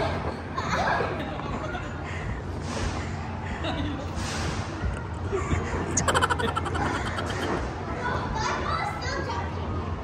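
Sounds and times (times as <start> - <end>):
steady low hum: 0.0 - 8.4.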